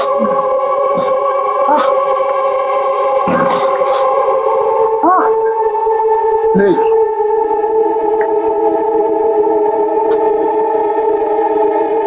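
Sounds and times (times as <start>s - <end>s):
synthesizer drone: 0.0s - 12.0s.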